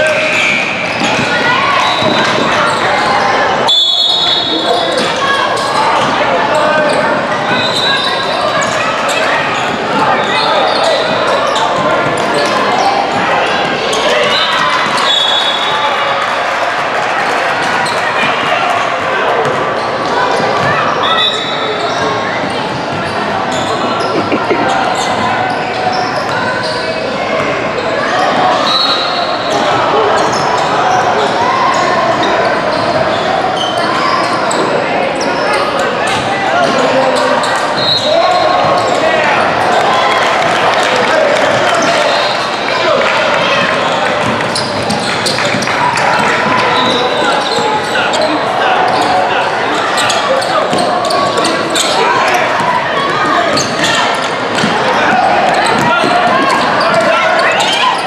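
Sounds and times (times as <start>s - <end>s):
indistinct voices: 0.0s - 58.0s.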